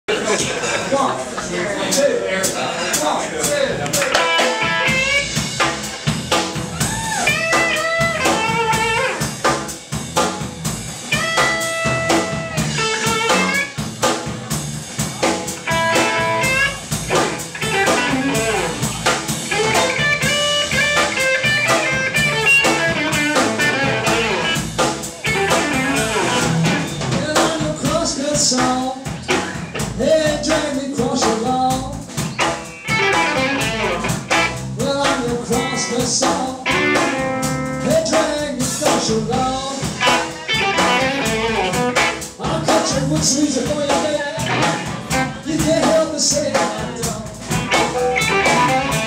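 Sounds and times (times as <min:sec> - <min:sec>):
bass guitar: 0:00.0 - 0:49.0
drum kit: 0:00.1 - 0:49.0
electric lead guitar: 0:03.8 - 0:49.0.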